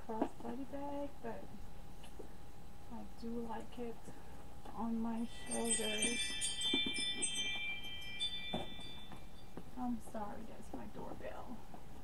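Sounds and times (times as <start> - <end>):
doorbell chime ringing: 5.3 - 9.6.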